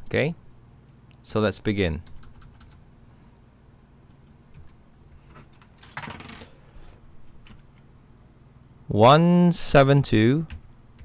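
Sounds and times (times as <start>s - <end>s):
computer keyboard clicks: 2.0s - 2.8s, 4.1s - 4.8s.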